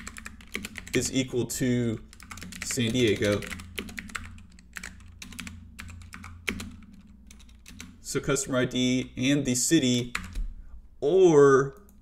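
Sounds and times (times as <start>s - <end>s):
keyboard typing: 0.0s - 1.2s, 2.1s - 8.0s, 10.1s - 10.5s.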